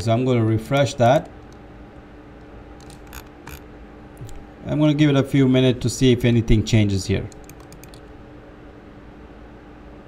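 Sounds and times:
low steady hum: 0.0s - 10.0s
computer mouse clicks: 2.8s - 3.6s, 4.2s - 4.4s, 7.3s - 8.1s.

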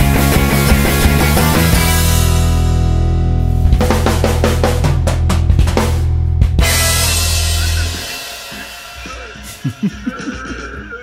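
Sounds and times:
electric bass and guitar chord: 0.0s - 8.4s
drum hits on kit and cymbals: 3.6s - 9.7s.

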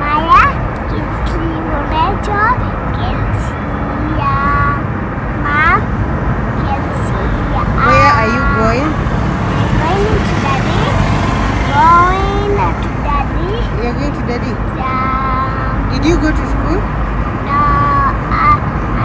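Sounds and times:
child talking: 0.0s - 5.9s, 6.6s - 8.9s, 9.7s - 11.0s, 11.7s - 13.8s, 14.7s - 15.9s, 17.4s - 19.0s.

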